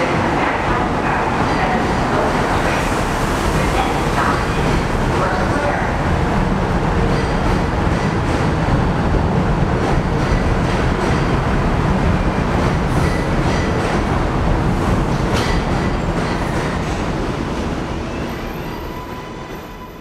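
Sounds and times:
subway train rumbling on steel: 0.0s - 20.0s.

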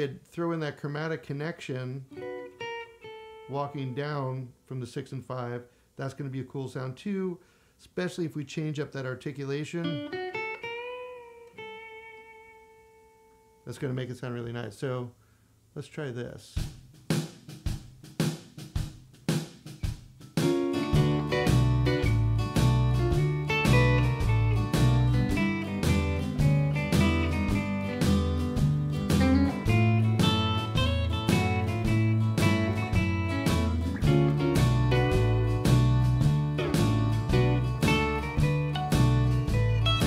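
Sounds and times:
electric guitar single note: 2.1s - 4.0s, 9.8s - 13.6s, 36.4s - 40.0s
electric guitar playing: 2.1s - 4.3s, 9.8s - 13.7s, 20.4s - 40.0s
drums: 16.3s - 40.0s
walking bass line: 20.8s - 40.0s.

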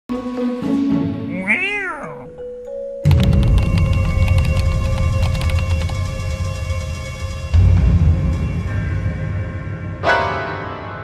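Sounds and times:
cat meow: 1.3s - 2.4s.

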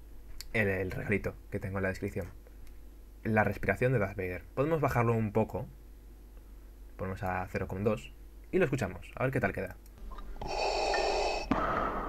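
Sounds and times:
hissing respirator breathing: 10.4s - 12.0s.

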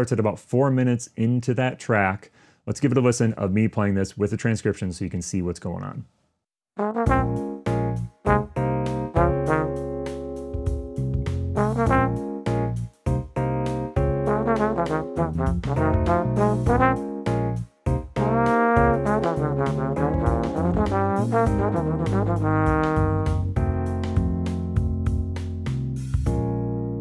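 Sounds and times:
trombone playing jazz solo: 6.8s - 10.6s, 11.4s - 12.8s, 14.0s - 24.7s.

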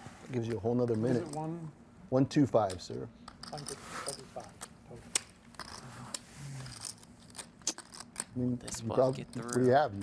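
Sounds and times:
poker chips clicking: 4.6s - 9.7s.

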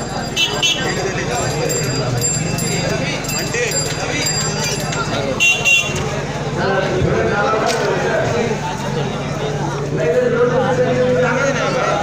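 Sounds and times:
street crowd chatter: 0.0s - 12.0s
horn toots: 5.4s - 6.1s.

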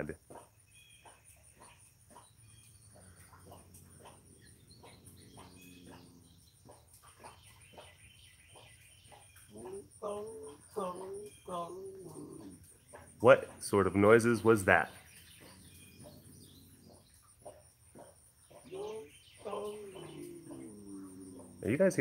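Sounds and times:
cat making cooing calls: 3.6s - 6.3s, 9.5s - 12.7s, 18.6s - 21.8s.

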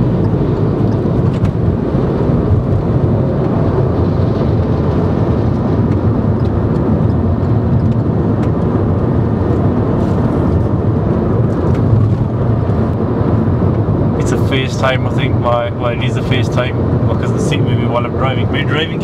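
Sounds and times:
car cabin road noise: 0.0s - 19.0s.

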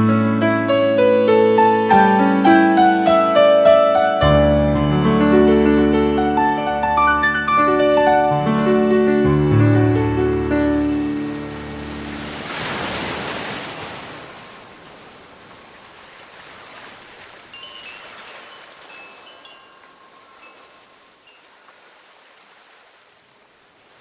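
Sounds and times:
surf rushing: 9.2s - 24.0s
wind chimes tinkling: 17.5s - 21.6s.

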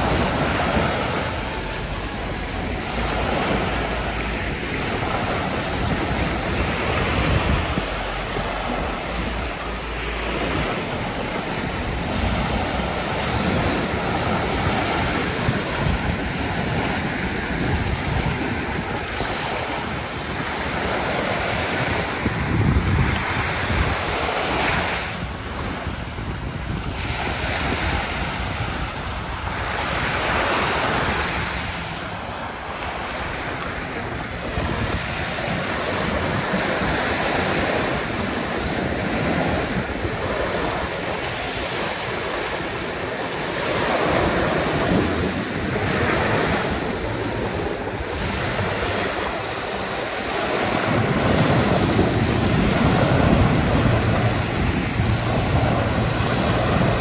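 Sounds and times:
waves washing up a beach: 0.0s - 57.0s
wind on microphone: 0.0s - 57.0s.

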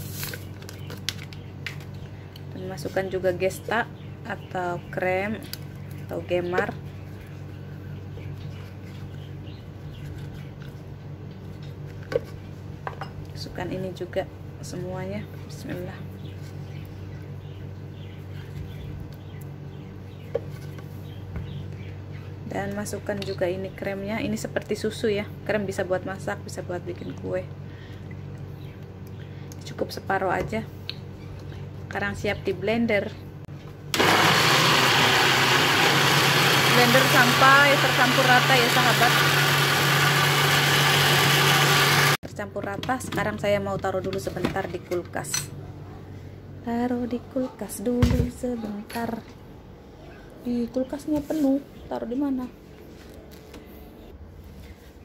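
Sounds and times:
steady low hum: 0.0s - 34.0s, 42.2s - 55.0s
blender motor running: 33.9s - 42.2s.

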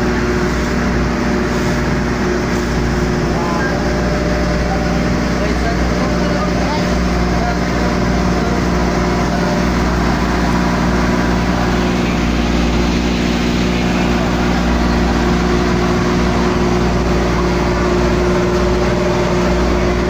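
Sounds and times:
boat engine droning: 0.0s - 20.0s
rushing water: 0.0s - 20.0s
wind: 0.0s - 20.0s.

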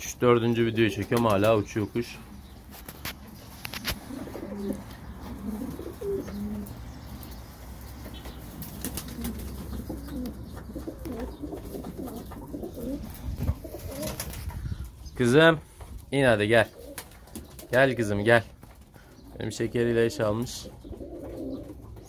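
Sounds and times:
pigeons cooing: 0.0s - 15.8s, 16.5s - 22.0s
wing flaps: 8.4s - 10.0s, 10.8s - 14.7s.

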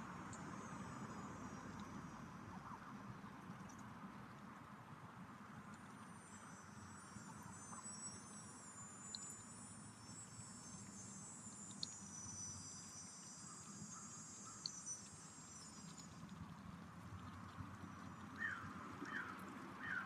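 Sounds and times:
soft ticks: 1.6s - 2.0s, 3.4s - 4.0s, 9.0s - 9.5s, 10.7s - 12.1s, 12.8s - 19.5s
insects trilling: 6.1s - 16.5s.

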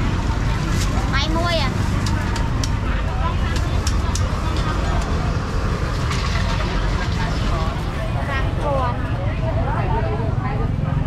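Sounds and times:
people talking: 0.0s - 5.6s, 6.3s - 11.0s
motorbike traffic rumble: 0.0s - 11.0s.

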